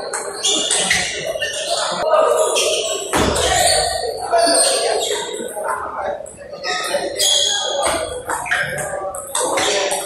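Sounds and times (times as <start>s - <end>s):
busy hall background noise: 0.0s - 10.0s.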